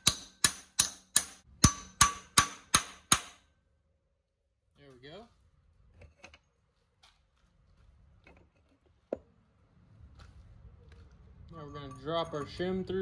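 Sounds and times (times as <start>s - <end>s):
hammer tapping steel pin: 0.0s - 3.4s.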